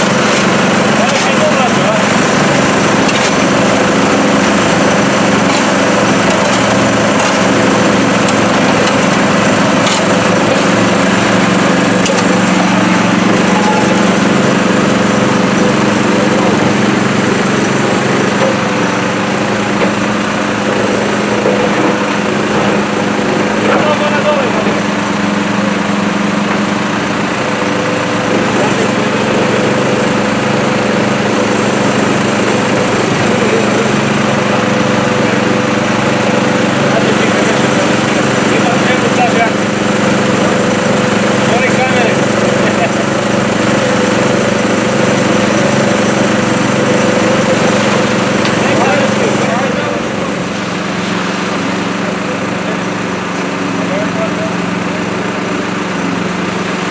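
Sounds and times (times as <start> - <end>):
diesel engine idling: 0.0 - 56.9
small pump running: 0.0 - 56.9.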